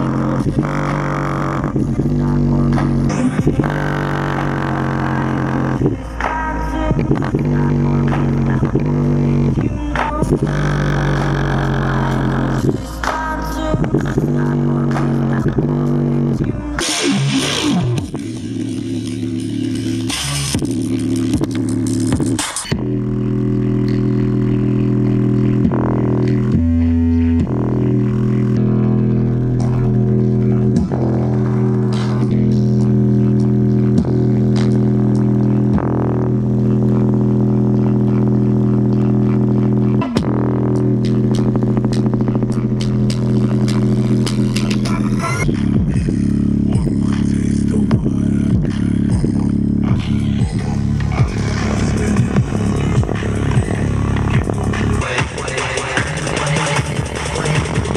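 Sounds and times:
bass-heavy music through speaker: 0.0s - 57.9s.

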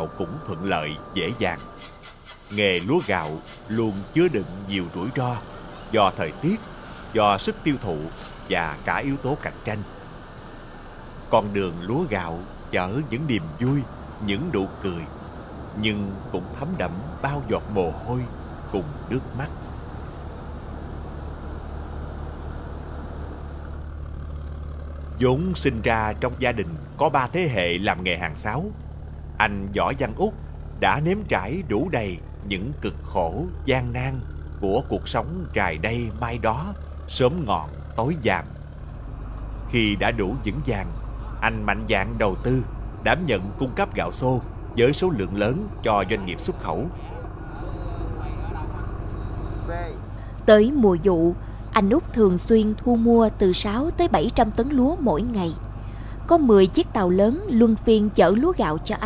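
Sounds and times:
engine droning: 0.0s - 59.0s
man talking faintly: 45.1s - 49.0s.

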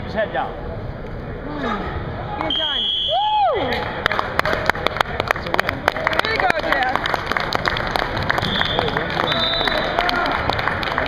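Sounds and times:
spectators clapping and cheering: 3.1s - 11.0s.

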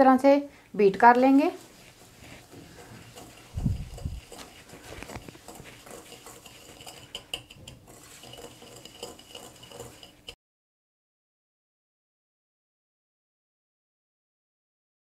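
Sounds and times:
whisk scraping glass bowl: 1.2s - 10.4s.

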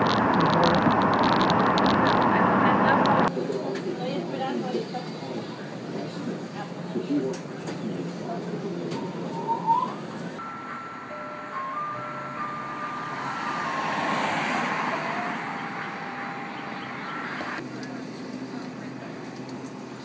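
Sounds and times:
road noise: 0.0s - 20.0s
ice cream van chime tune: 10.4s - 17.6s.

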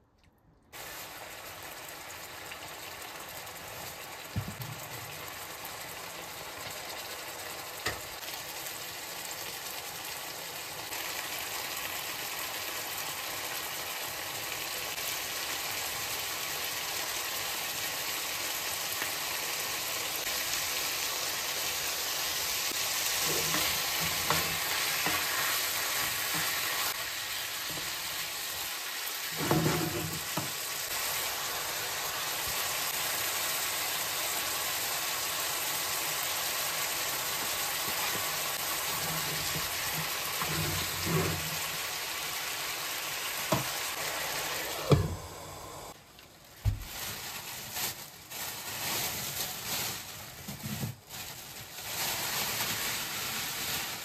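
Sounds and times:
chicken sizzling in frying pan: 0.8s - 46.0s
utensil scraping in pan: 22.7s - 31.0s, 37.8s - 42.0s.

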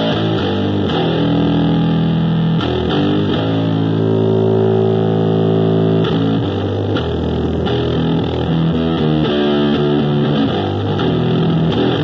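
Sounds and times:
distorted electric bass notes: 0.0s - 12.0s.

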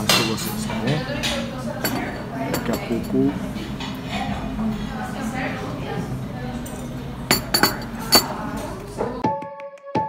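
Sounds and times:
murmur of cafe voices: 0.0s - 9.2s
coffee cup clinking down: 1.3s - 3.2s, 7.3s - 8.4s.

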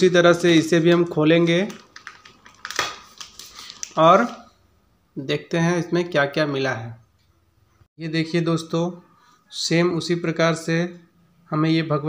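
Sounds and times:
plastic wrapping crinkling: 0.4s - 4.4s
plastic wrapping tearing: 1.5s - 4.4s.

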